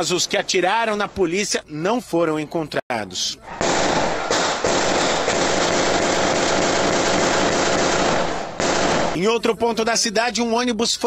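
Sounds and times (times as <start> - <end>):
rapid continuous gunfire: 3.6 - 9.2.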